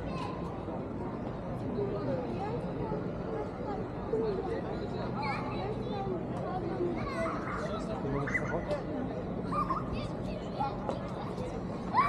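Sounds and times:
low traffic hum: 0:00.0 - 0:12.0
people talking on street: 0:00.0 - 0:12.0.

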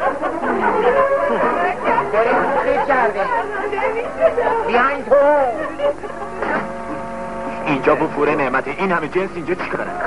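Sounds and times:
babble of voices: 0:00.0 - 0:07.9.

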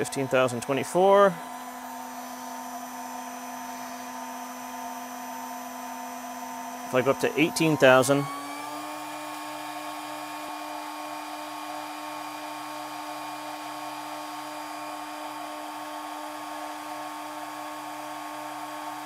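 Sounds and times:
cnc mill spindle whining: 0:00.0 - 0:19.0.

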